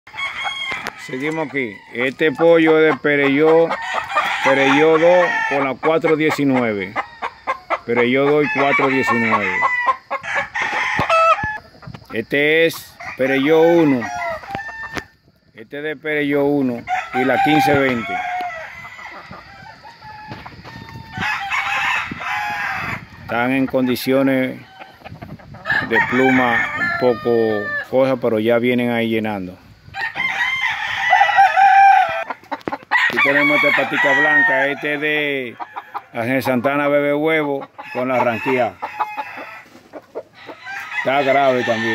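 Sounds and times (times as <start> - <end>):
roosters crowing: 0.1 - 41.9.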